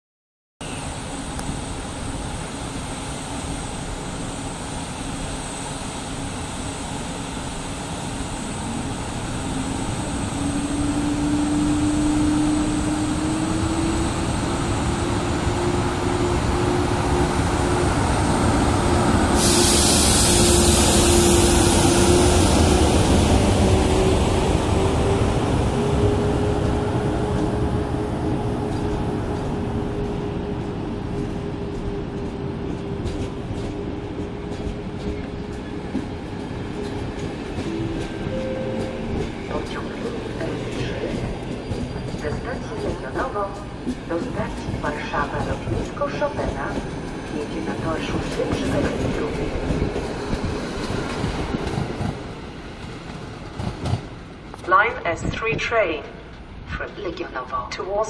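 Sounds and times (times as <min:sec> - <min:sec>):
electric locomotive hum: 0:00.6 - 0:58.0
rumble of train wheels: 0:00.6 - 0:58.0
loud hiss: 0:19.3 - 0:22.1.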